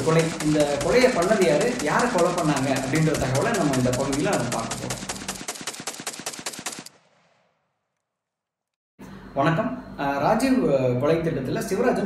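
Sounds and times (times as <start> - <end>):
automatic gunfire: 0.0 - 7.4.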